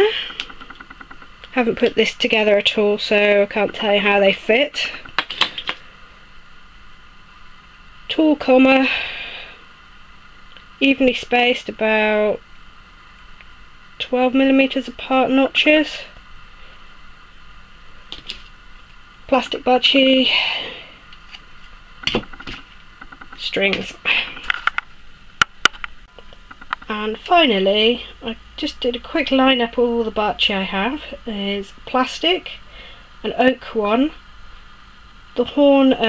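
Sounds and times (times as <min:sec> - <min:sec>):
low background hum and hiss: 0:00.0 - 0:36.0.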